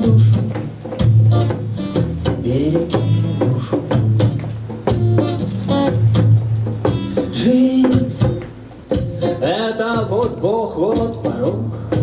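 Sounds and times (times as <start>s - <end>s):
acoustic guitar strummed reggae rhythm: 0.0s - 12.0s.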